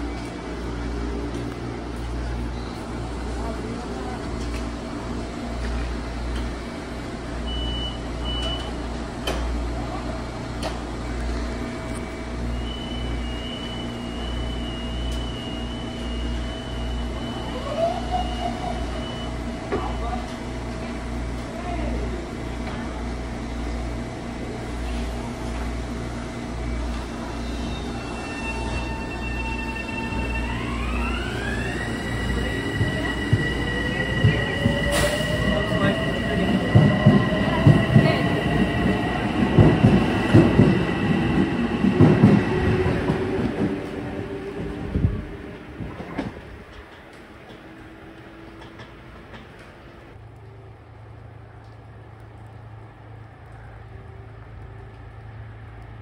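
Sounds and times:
train standing hum: 0.0 - 56.0
train doors closing with knock: 7.5 - 9.6, 31.8 - 44.0, 45.8 - 47.8.

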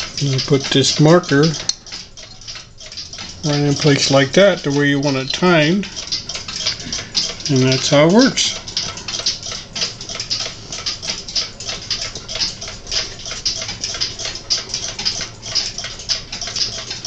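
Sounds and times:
clock ticking fast: 0.0 - 17.0.

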